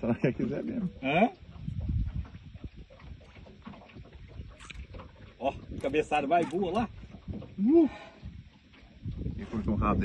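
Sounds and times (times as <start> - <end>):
water against boat hull: 0.0 - 10.0
wind on microphone: 0.8 - 10.0.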